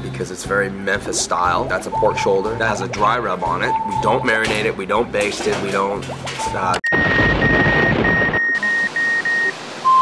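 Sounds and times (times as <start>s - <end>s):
steady lower beep: 6.4s - 10.0s.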